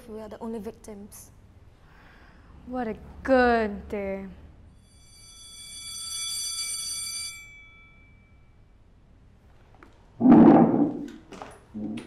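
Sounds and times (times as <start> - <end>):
high ringing tone: 4.7 - 9.1.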